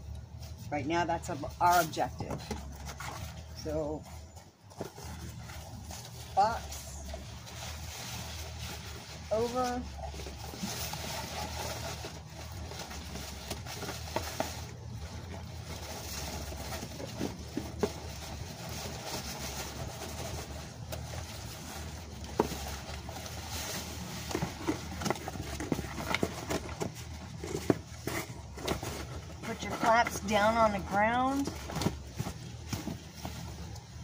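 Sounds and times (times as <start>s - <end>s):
cardboard scraping against leaves: 0.2s - 34.0s.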